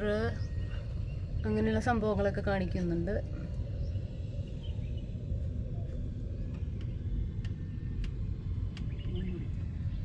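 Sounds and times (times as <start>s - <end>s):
low rumble: 0.0s - 10.0s
faint clicks: 6.5s - 9.2s.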